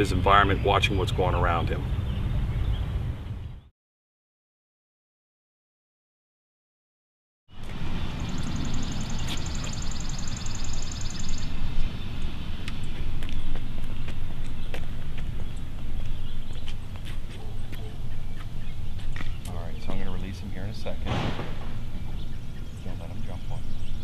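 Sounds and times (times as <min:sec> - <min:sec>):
heavy low rumble: 0:07.6 - 0:24.0
bird trilling: 0:08.1 - 0:24.0.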